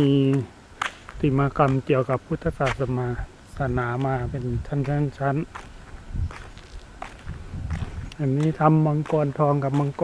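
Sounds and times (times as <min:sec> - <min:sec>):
footsteps on concrete: 0:00.2 - 0:01.9, 0:03.7 - 0:10.0.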